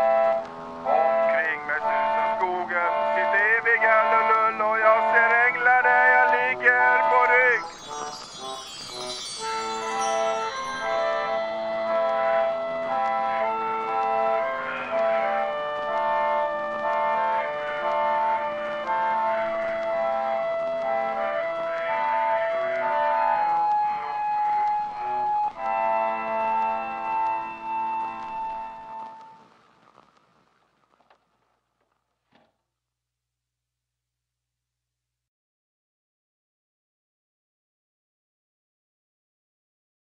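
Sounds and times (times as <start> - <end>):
pump organ playing: 0.0 - 29.4.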